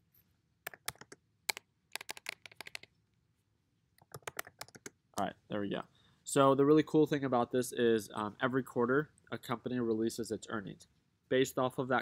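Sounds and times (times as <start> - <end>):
keyboard typing clicks: 0.7 - 1.2, 1.9 - 2.9, 4.0 - 5.0.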